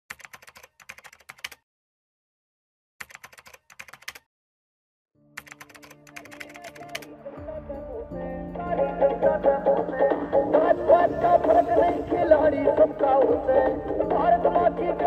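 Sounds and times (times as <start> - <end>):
rapid keyboard key clicks: 0.1 - 1.6, 3.0 - 4.3, 5.4 - 7.1
music: 5.2 - 15.0.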